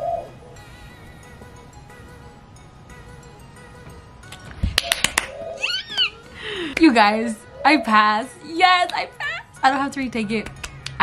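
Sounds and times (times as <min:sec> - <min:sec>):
woman squealing: 0:05.6 - 0:06.2
breathy exhale: 0:06.3 - 0:06.8
woman speaking: 0:06.8 - 0:10.5.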